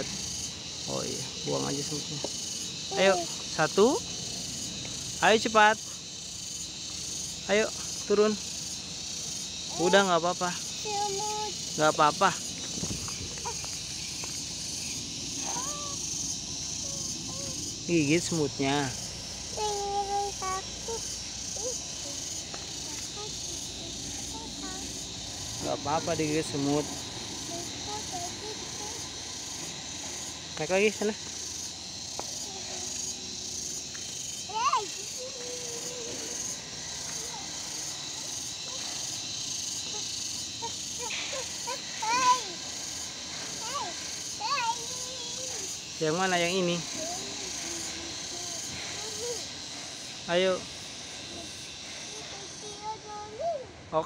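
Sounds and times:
insects droning: 0.0s - 54.0s
steady high hiss: 0.0s - 54.0s.

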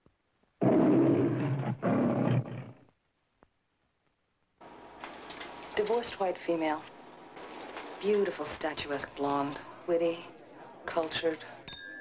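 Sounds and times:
lion roaring: 0.6s - 2.8s.

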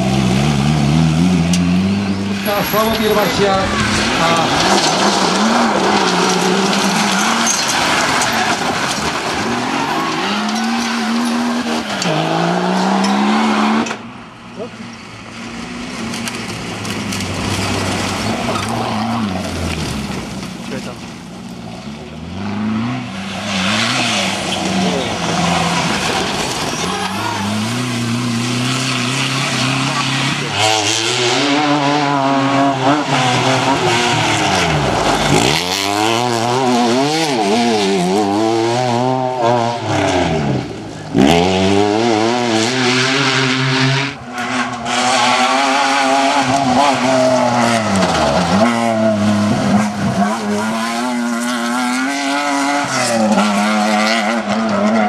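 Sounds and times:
car passing close: 0.0s - 55.0s
rally car engines revving: 0.0s - 55.0s.

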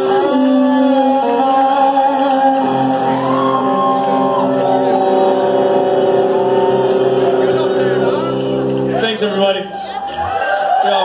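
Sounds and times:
rock band holding a chord: 0.0s - 10.1s
audience voices: 0.0s - 11.0s.

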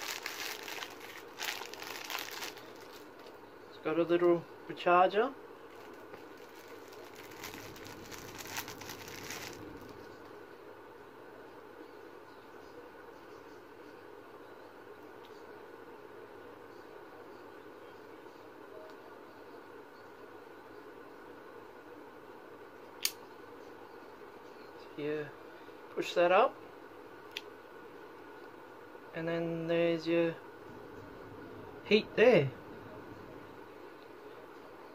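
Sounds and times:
items crinkling and rustling: 0.0s - 3.4s, 5.7s - 10.3s
faint steady hum: 0.0s - 34.9s.

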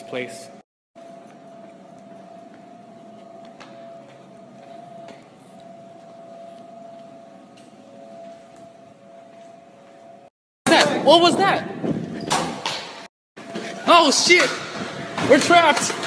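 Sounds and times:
steady hum: 0.0s - 10.3s
faint held tone: 1.0s - 10.3s.

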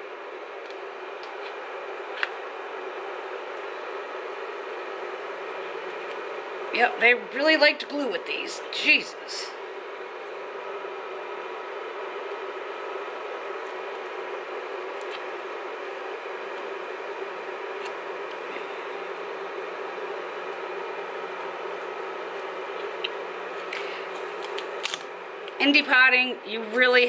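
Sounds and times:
background hum and hiss: 0.0s - 27.0s.

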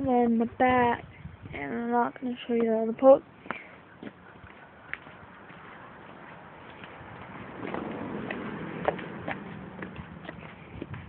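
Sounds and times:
footsteps on grass and gravel: 2.2s - 11.0s.

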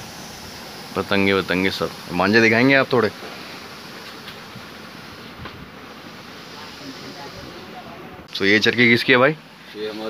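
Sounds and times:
busy shop background noise: 5.2s - 10.0s.

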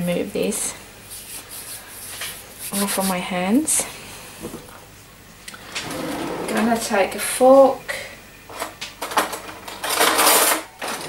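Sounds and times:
metal cutlery rattling in drawer: 9.0s - 11.0s.

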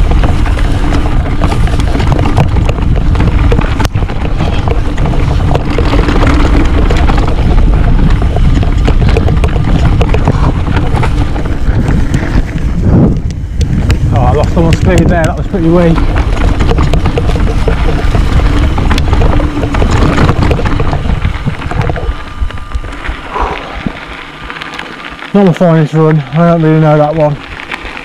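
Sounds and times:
bike rattling and knocking: 0.0s - 28.0s
tyres rumbling on dirt: 0.0s - 28.0s
wind buffeting microphone: 0.0s - 28.0s.

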